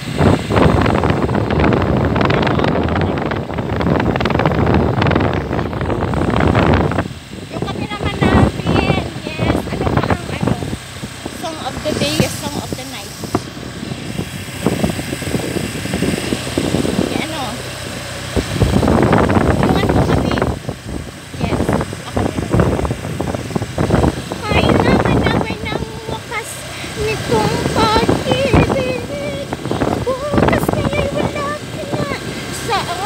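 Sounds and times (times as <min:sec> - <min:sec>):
road and vehicle noise: 0:00.0 - 0:33.0
woman's voice: 0:07.5 - 0:13.5, 0:16.8 - 0:17.8, 0:19.4 - 0:20.7, 0:21.3 - 0:23.0, 0:24.2 - 0:33.0.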